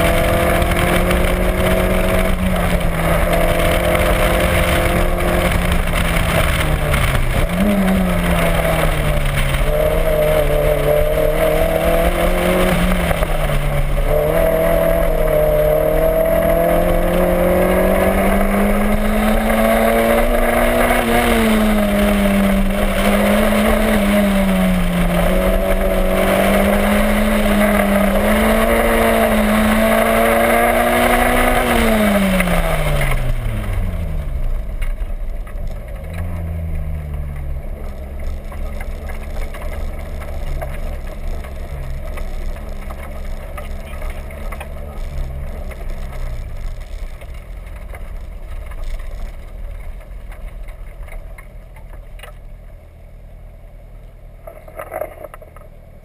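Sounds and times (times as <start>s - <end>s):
car engine revving: 0.0s - 52.4s.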